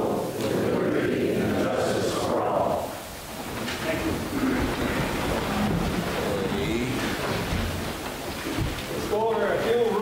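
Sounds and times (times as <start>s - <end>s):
faint murmuring voices: 0.0s - 10.0s.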